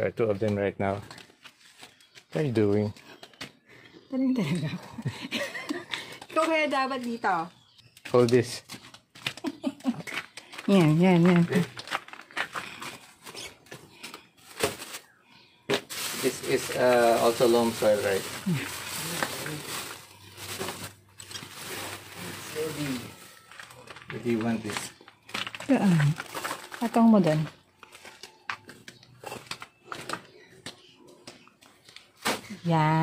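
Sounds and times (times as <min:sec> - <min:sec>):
plastic sack rustling: 0:10.7 - 0:28.2.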